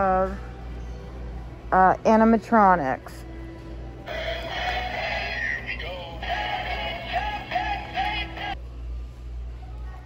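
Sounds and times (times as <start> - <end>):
toy singing over music: 4.1 - 8.6.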